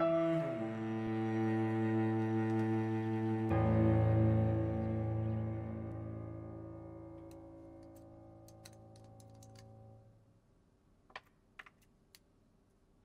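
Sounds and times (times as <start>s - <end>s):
low music chord: 0.0s - 8.5s.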